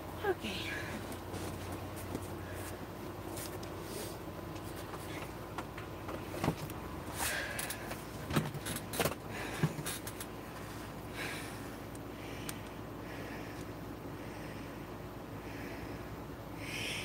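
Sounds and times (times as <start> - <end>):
steady low hum: 0.0 - 17.0.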